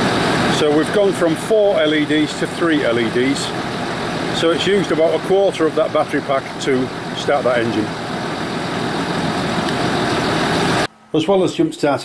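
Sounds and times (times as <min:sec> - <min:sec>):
diesel engine idling: 0:00.0 - 0:10.9.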